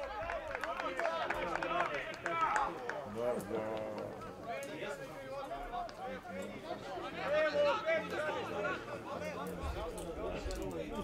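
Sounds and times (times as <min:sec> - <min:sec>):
men talking and calling out: 0:00.5 - 0:11.0.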